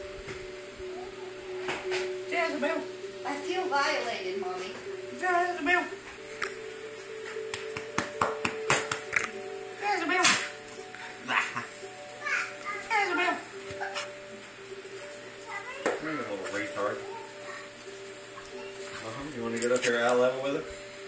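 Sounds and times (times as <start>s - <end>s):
background music: 0.0s - 21.0s
steady hum: 0.0s - 21.0s.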